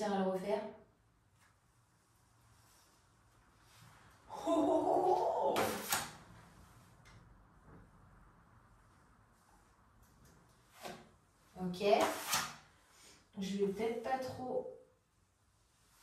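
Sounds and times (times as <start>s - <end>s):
woman exclaiming: 4.3s - 5.8s.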